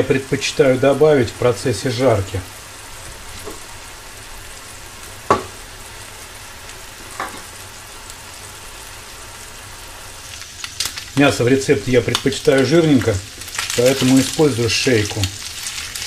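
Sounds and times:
meat sizzling in oil: 0.0 - 16.0
sharp knock: 5.3 - 5.5.

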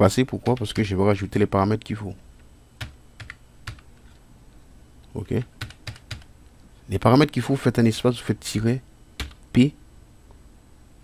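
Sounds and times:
computer keyboard keystrokes: 2.8 - 3.8, 5.6 - 6.3, 9.2 - 9.4.

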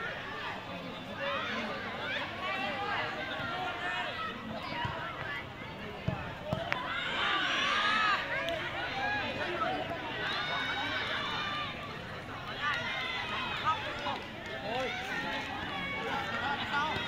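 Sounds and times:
young voices shouting: 6.6 - 17.0.

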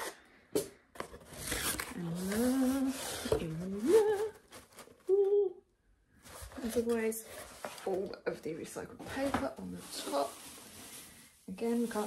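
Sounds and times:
woman humming: 2.0 - 4.4, 5.1 - 5.6.

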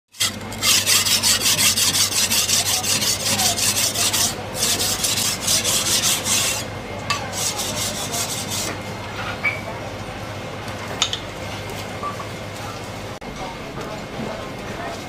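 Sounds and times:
cleaver scraping wooden block: 0.1 - 6.7, 7.3 - 8.8.

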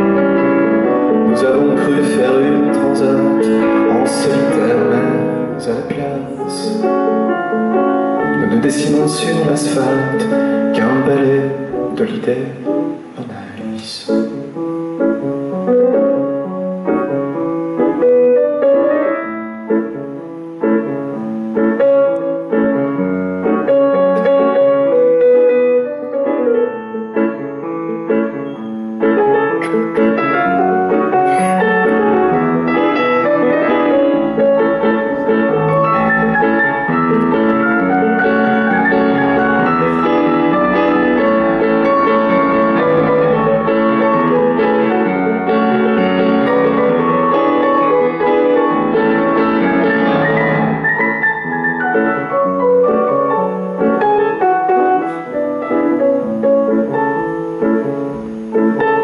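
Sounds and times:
grand piano playing slow chords: 0.0 - 59.0.

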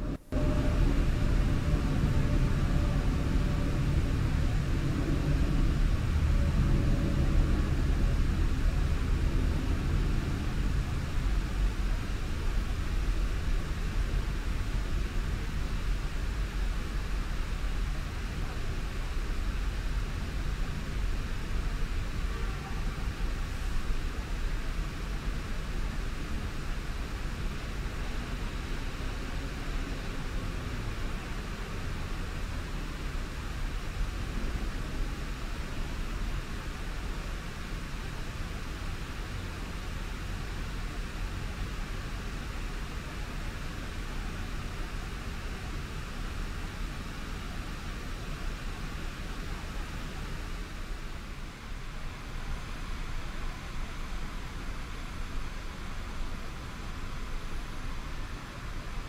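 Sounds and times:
distant traffic rumble: 0.0 - 13.2.

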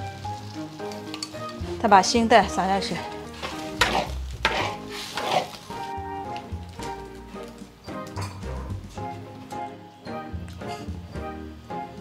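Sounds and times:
light background music: 0.0 - 12.0
spatula scraping soup in wok: 3.0 - 6.0.

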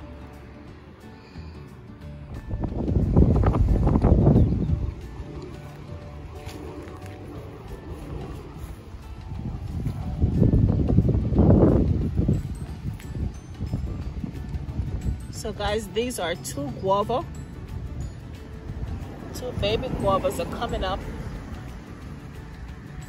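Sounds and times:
soft background music: 0.0 - 23.0
wind gusts on microphone: 2.1 - 23.0.

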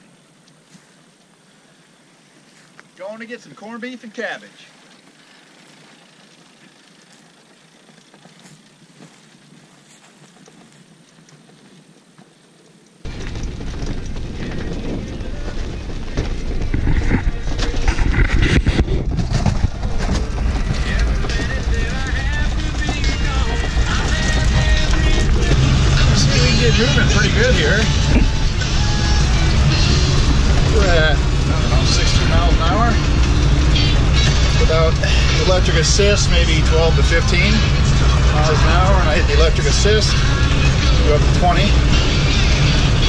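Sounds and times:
wind and road noise: 0.0 - 43.0.

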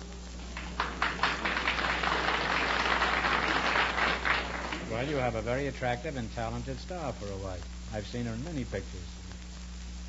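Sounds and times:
audience applauding: 0.4 - 5.4.

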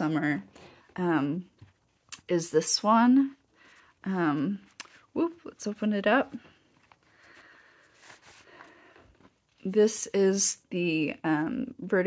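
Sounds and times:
soft scrapes: 0.2 - 9.7
card deck rustling: 3.6 - 9.5.

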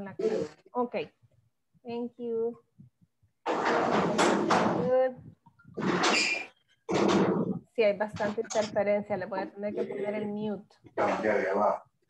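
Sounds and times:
harsh microphone interference noise: 3.5 - 10.1.

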